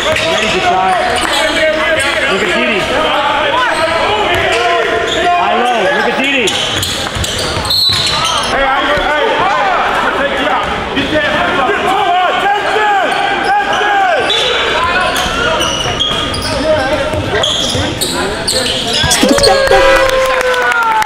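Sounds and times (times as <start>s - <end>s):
sneakers squeaking: 0.0s - 9.2s, 12.7s - 19.8s.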